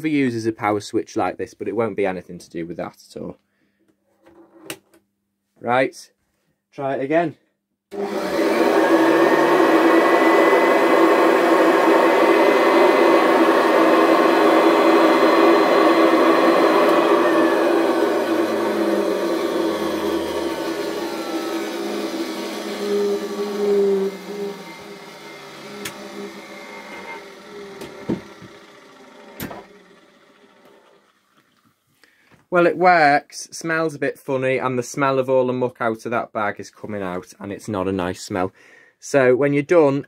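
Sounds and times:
vacuum cleaner motor whining: 7.9 - 31.3.

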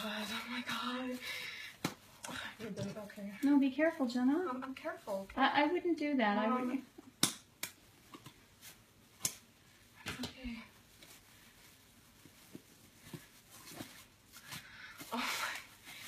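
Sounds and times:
sharp snaps: 7.1 - 7.8, 9.2 - 9.5.

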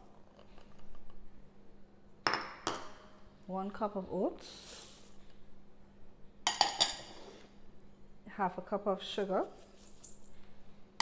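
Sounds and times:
ceramic bowl clinking on steel bowl: 6.5 - 7.1.

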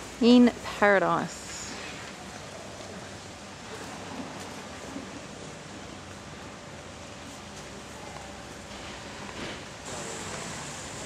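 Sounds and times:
outdoor ambience hiss: 0.0 - 11.0.

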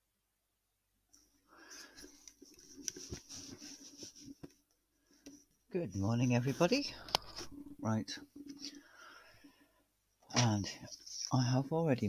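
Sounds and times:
person whispering: 5.8 - 8.8.

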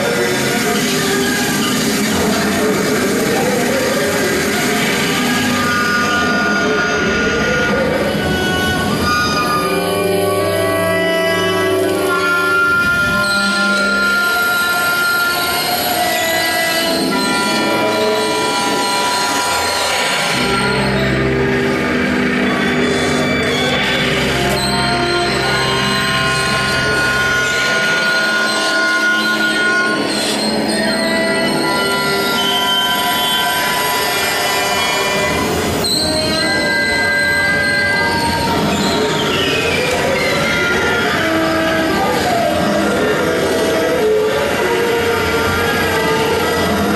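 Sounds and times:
bass clarinet: 0.0 - 46.9.

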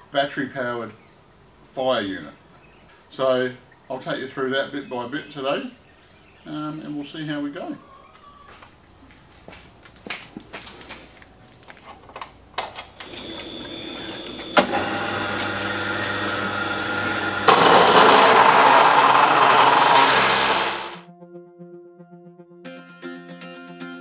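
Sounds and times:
saw motor running: 13.0 - 21.0
saw blade cutting steel: 17.5 - 21.0.

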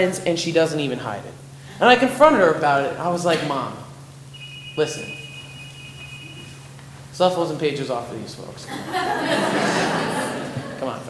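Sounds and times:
low electrical hum: 0.0 - 11.0
phone alert beep: 4.3 - 6.8.

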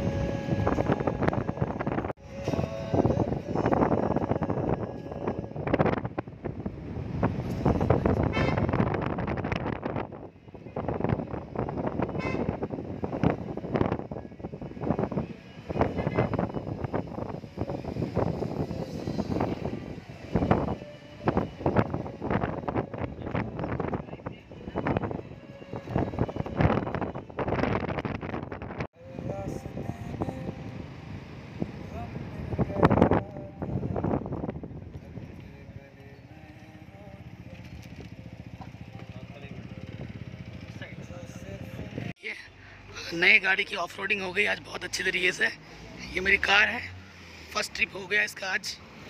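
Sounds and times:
wind buffeting microphone: 0.0 - 36.1, 36.9 - 42.1
car road noise from inside: 12.6 - 40.0.

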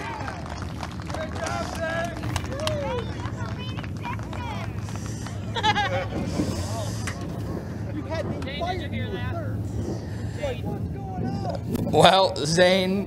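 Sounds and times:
low engine hum: 0.0 - 13.0
people talking and calling out: 0.0 - 13.0.

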